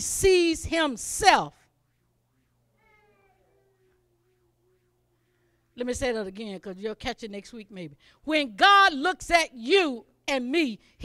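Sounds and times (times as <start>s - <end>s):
faint drawn-out pitched tone: 1.8s - 5.7s.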